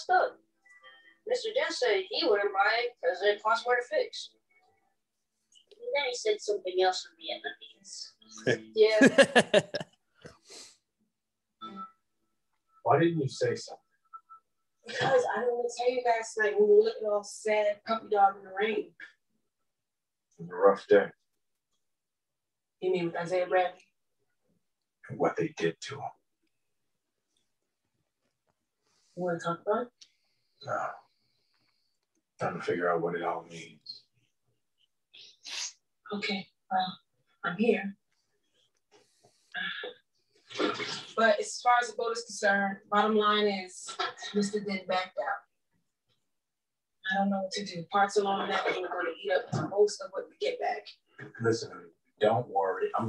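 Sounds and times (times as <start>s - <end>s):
man laughing softly: 9.0s - 9.8s.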